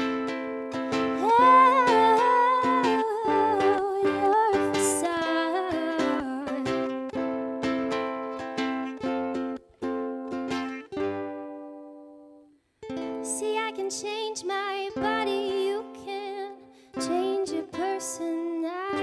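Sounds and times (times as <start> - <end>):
acoustic guitar chords: 0.0 - 14.0
woman singing: 1.1 - 7.1, 13.2 - 19.0.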